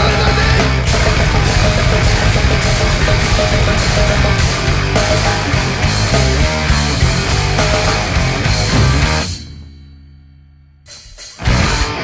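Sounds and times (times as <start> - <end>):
distorted electric guitar riffing: 0.0 - 9.6, 11.4 - 12.0
bass: 0.0 - 12.0
pounding drums: 0.0 - 12.0.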